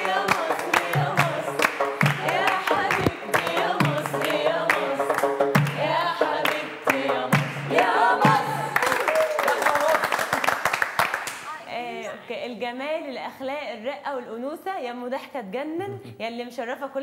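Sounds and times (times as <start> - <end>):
group singing: 0.0 - 9.0
rhythmic clapping: 0.0 - 11.6.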